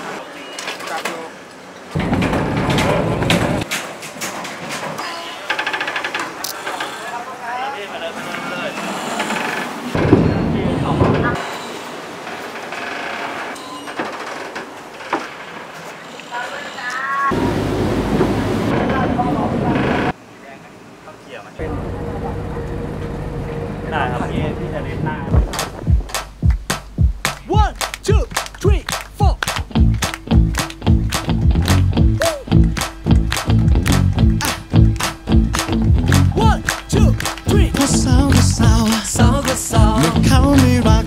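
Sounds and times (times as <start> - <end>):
people talking: 0.0 - 1.4, 7.0 - 8.9, 10.3 - 11.4, 18.7 - 22.7, 23.5 - 25.4, 27.4 - 29.6, 32.2 - 32.5, 36.1 - 41.0
boat engine running: 21.6 - 26.0.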